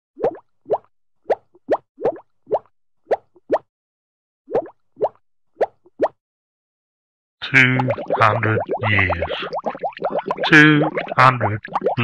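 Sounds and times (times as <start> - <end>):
underwater bubbles plopping: 0.2 - 2.7, 7.6 - 12.0.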